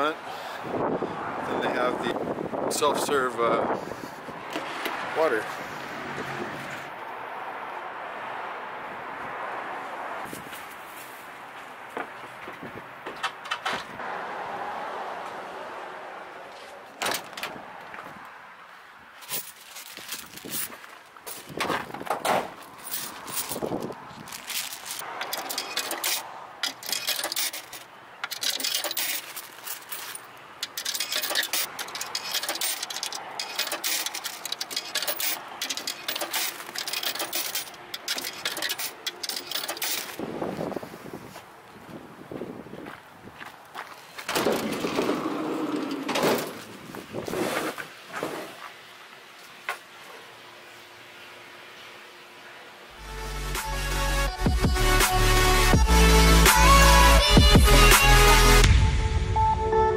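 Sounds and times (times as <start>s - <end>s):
hands handling hose and machine: 19.2s - 40.2s.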